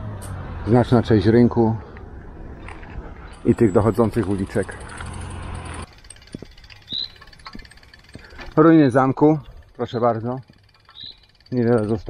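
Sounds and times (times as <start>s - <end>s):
bike rattling over cobblestones: 2.6s - 12.0s.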